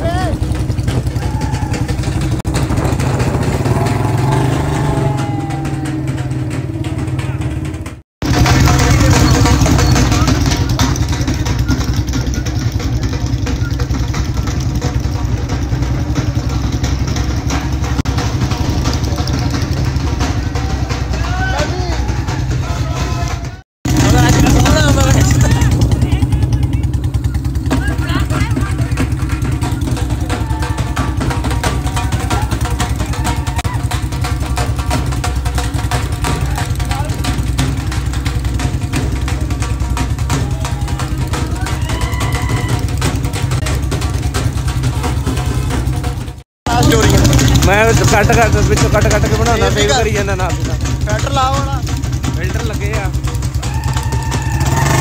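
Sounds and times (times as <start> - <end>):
voices shouting: 0.0 - 7.9, 18.5 - 35.2, 35.9 - 44.2, 53.2 - 55.0
motorcycle engines droning: 0.0 - 55.0.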